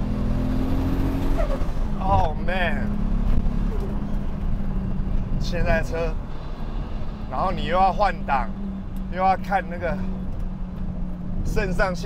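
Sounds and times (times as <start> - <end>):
car engine droning: 0.0 - 12.0
road rumble: 0.0 - 12.0.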